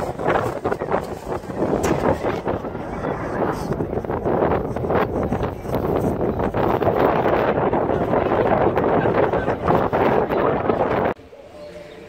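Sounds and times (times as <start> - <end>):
wind buffeting microphone: 0.0 - 11.2.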